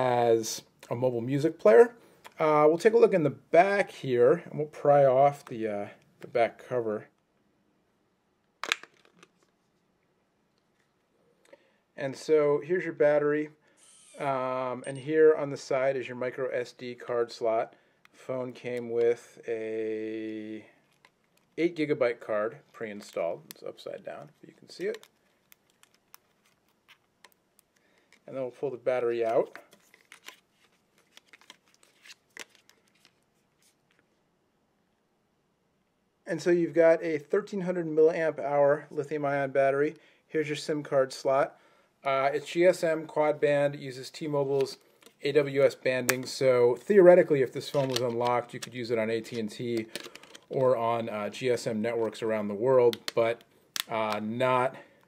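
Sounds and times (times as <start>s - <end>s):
phone battery clicks and scratches: 24.8s - 28.3s, 29.2s - 34.0s, 47.6s - 50.6s.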